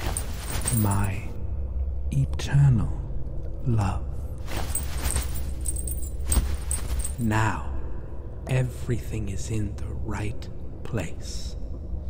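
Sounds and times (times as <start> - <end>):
small metal pieces jingling: 0.0 - 1.2, 4.4 - 7.3
metal clink: 0.0 - 1.3, 4.5 - 7.3
low background rumble: 0.0 - 12.0.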